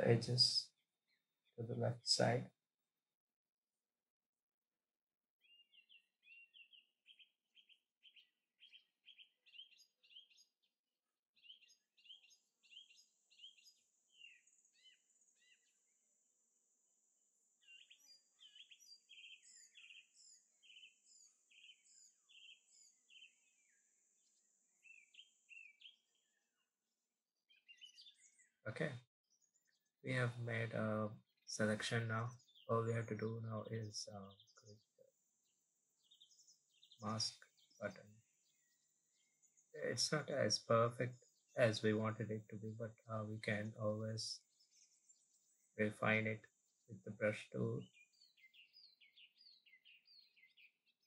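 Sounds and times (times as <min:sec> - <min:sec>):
bird chirping: 0:00.0 - 0:02.4, 0:05.4 - 0:10.8, 0:11.4 - 0:16.0, 0:17.5 - 0:26.7, 0:27.5 - 0:51.0
high thin birdsong: 0:00.0 - 0:02.5, 0:05.4 - 0:51.0.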